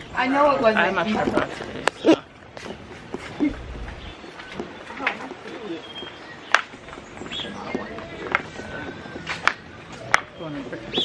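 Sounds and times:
faint voices: 0:00.0 - 0:11.0
bird calling: 0:03.3 - 0:11.0.

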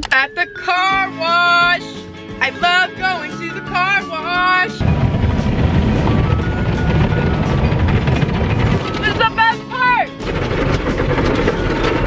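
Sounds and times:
car wash brushes rumbling: 0:04.8 - 0:12.0.

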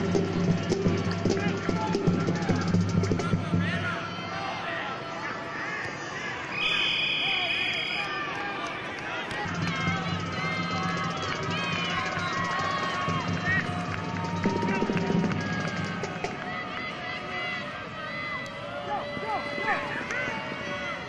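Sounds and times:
crowd shouting: 0:00.0 - 0:21.0
whistle: 0:06.5 - 0:08.2.

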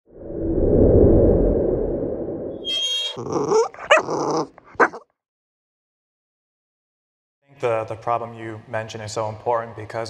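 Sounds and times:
low rumbling swell: 0:00.1 - 0:02.6.

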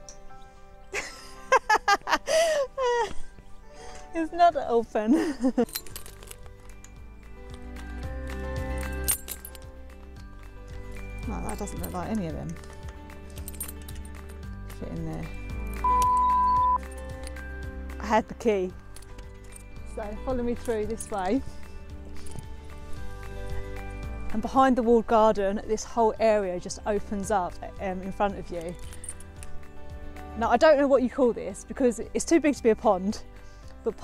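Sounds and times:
background music: 0:00.0 - 0:34.0
woman laughing: 0:01.0 - 0:03.3, 0:05.0 - 0:05.8
test tone beep: 0:15.8 - 0:16.8.

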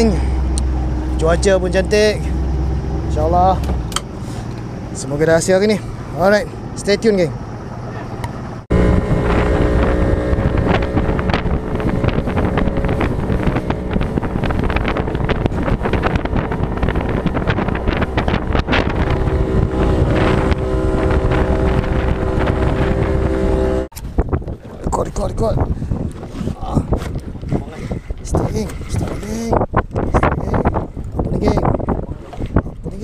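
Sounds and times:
water rushing: 0:00.0 - 0:23.9
boat motor running: 0:00.0 - 0:32.8
wind buffeting microphone: 0:00.0 - 0:33.0.

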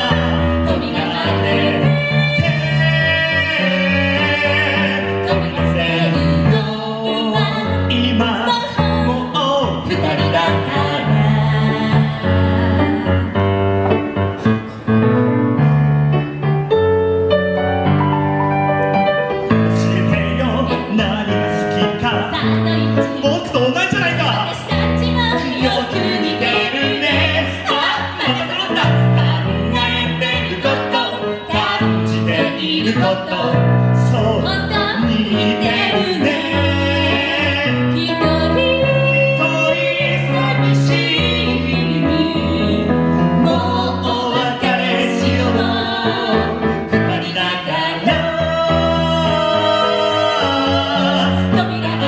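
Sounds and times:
woman and man singing a duet: 0:00.0 - 0:13.4, 0:19.8 - 0:52.0
piano playing sustained chords: 0:00.0 - 0:52.0.

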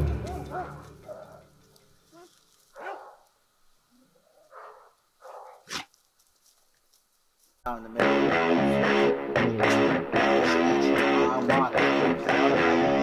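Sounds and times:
music: 0:00.0 - 0:01.6, 0:07.7 - 0:13.0.

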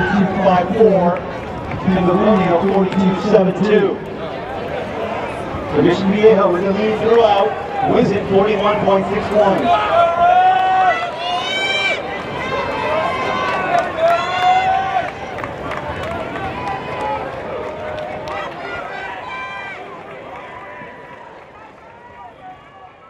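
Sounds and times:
people talking and calling out: 0:00.0 - 0:23.0.

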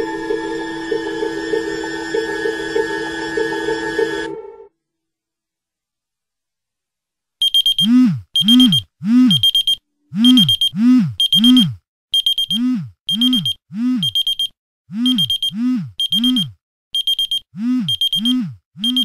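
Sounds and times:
electronic alarm beeping: 0:07.4 - 0:19.0.

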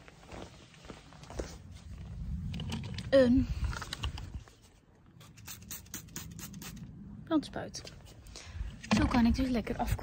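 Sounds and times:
spray bottle spritzing: 0:05.2 - 0:06.9.

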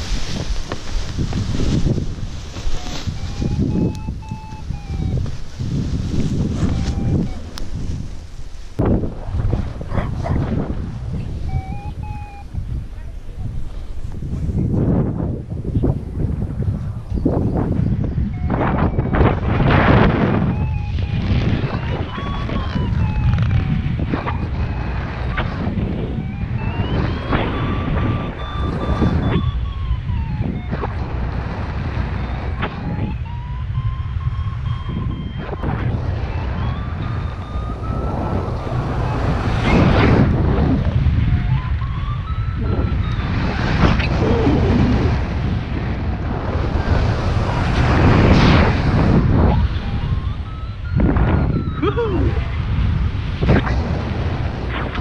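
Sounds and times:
wind buffeting microphone: 0:00.0 - 0:55.0
variometer tone gliding in pitch: 0:02.6 - 0:07.9, 0:11.1 - 0:13.4, 0:18.0 - 0:45.6, 0:48.4 - 0:52.7.

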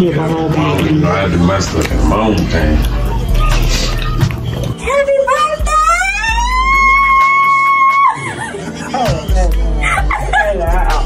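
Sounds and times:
music with deep bass beat: 0:00.0 - 0:11.0.

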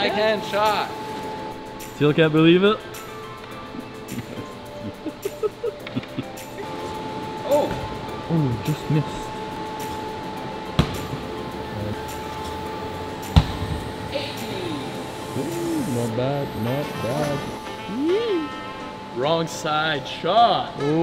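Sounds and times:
steady background drone: 0:00.0 - 0:21.0.

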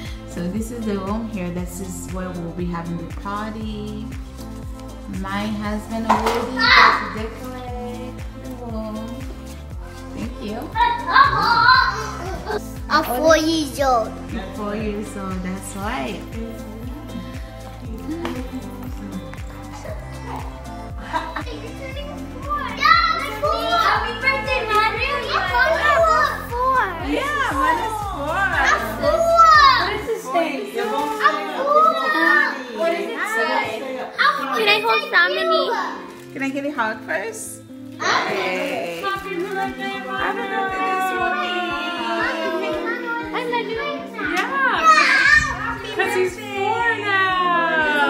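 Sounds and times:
background music with steady beat: 0:00.0 - 0:48.0
children and women calling out: 0:06.4 - 0:07.5, 0:10.7 - 0:13.2, 0:21.5 - 0:34.6, 0:38.0 - 0:48.0
child squealing and shouting: 0:11.1 - 0:12.1.

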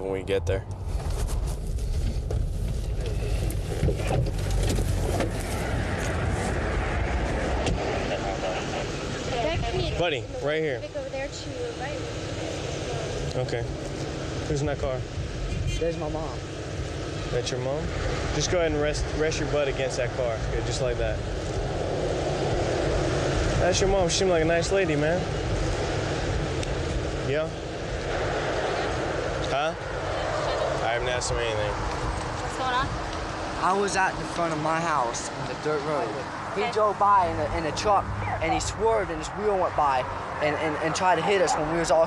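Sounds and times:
low rumble: 0:00.0 - 0:10.4
road and engine rumble in car: 0:00.0 - 0:42.0.

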